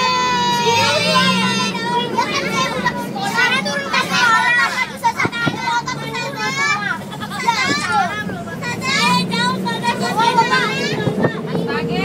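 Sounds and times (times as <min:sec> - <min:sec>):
bus engine drone: 0:00.0 - 0:12.0
children calling and chattering: 0:00.0 - 0:12.0.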